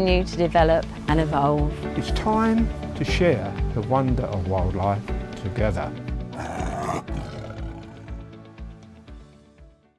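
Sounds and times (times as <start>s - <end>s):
big cat roar: 6.4s - 8.3s.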